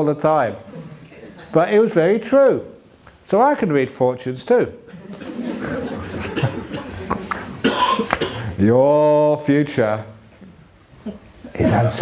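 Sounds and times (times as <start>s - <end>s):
person coughing: 7.6s - 8.6s.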